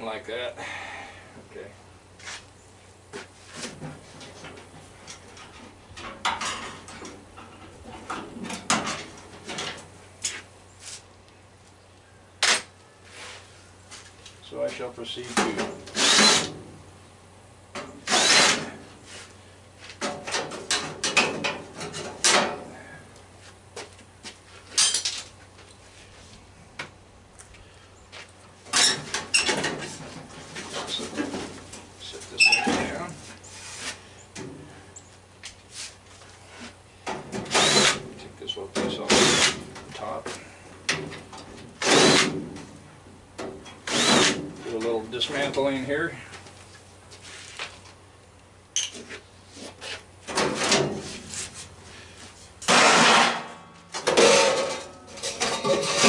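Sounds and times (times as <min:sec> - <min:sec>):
cordless drill short bursts: 0:16.0 - 0:16.5, 0:18.1 - 0:18.7, 0:37.5 - 0:38.0, 0:39.2 - 0:39.6, 0:41.8 - 0:42.3, 0:43.8 - 0:44.4.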